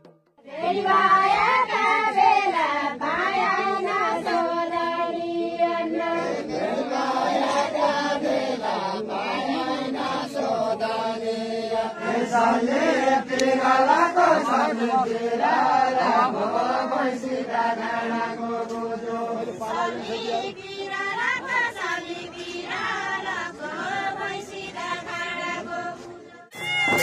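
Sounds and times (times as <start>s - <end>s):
group chanting folk song: 0.4s - 27.0s.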